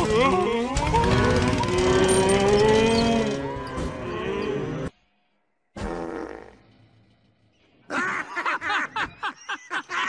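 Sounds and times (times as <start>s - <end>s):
startled moo-like bellow: 0.0s - 4.9s.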